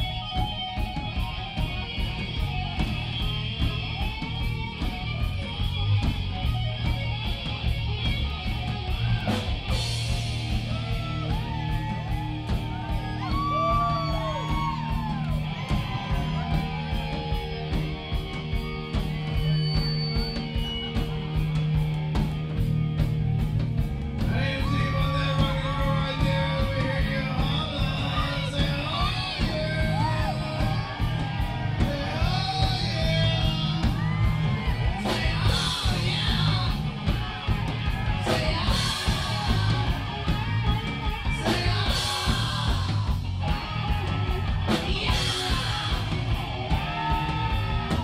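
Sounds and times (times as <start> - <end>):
high wailing guitar line: 0.0 - 48.0
live rock band playing: 0.0 - 48.0
singer yelling: 8.5 - 18.2, 24.2 - 48.0.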